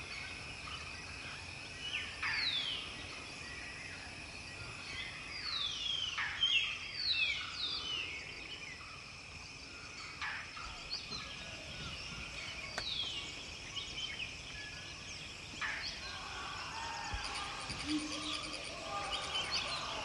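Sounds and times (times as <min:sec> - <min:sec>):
birds calling in whistled notes: 0:00.0 - 0:20.0
high insect drone: 0:00.0 - 0:20.0.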